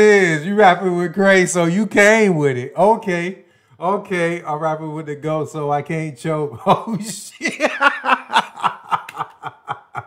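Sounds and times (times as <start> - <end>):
man laughing: 6.6 - 10.0.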